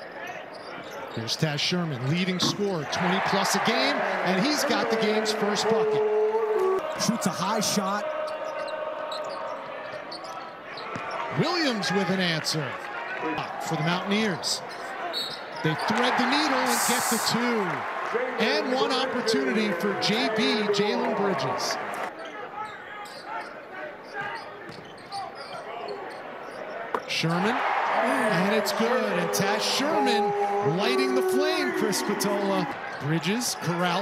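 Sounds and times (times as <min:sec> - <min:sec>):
sneaker squeaks: 0:00.0 - 0:01.4, 0:02.2 - 0:03.0, 0:08.3 - 0:11.5, 0:14.6 - 0:16.0, 0:22.1 - 0:27.1
arena crowd noise: 0:00.0 - 0:34.0.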